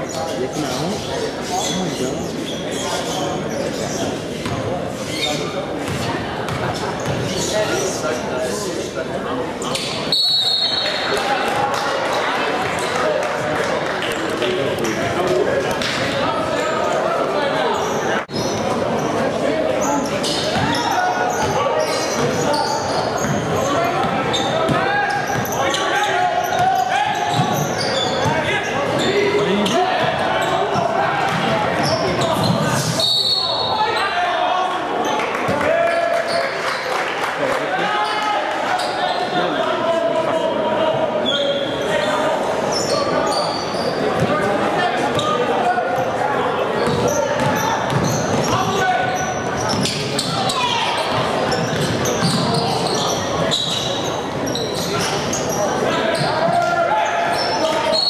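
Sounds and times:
spectators talking and calling out: 0.0 - 58.0.

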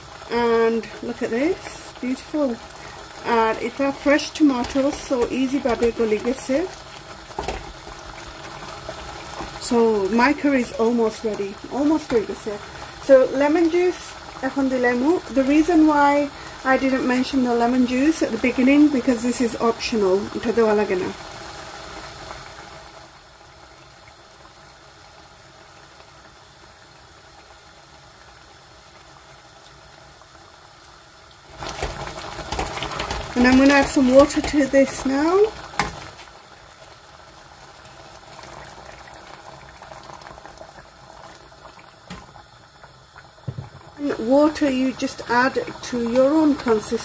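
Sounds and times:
faint pan sizzle: 0.0 - 47.0
pot simmering: 0.0 - 47.0.

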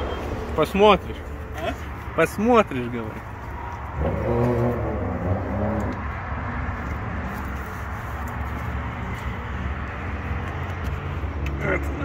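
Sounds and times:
motor vehicle rumble: 0.0 - 12.0
outdoor background noise: 0.0 - 12.0.

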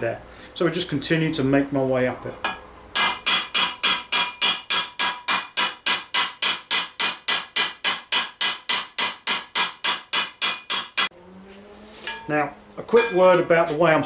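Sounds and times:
hammer striking sheet metal: 2.4 - 11.1, 12.0 - 12.4.

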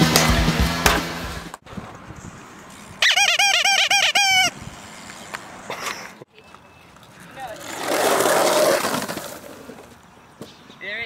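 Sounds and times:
rubber squeeze toy squeaking: 3.0 - 4.6.

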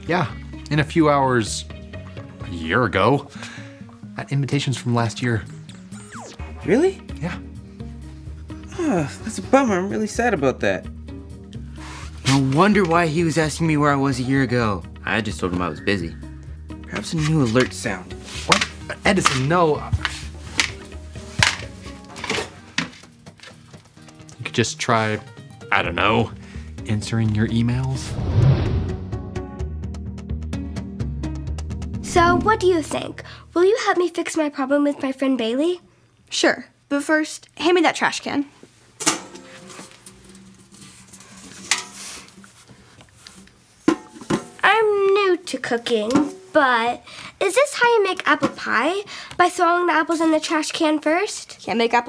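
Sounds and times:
light background music: 0.0 - 35.8, 38.2 - 52.0.

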